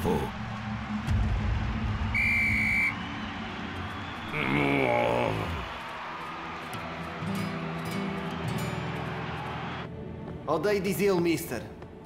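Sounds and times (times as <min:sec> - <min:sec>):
referee's whistle blast: 0:02.1 - 0:03.2.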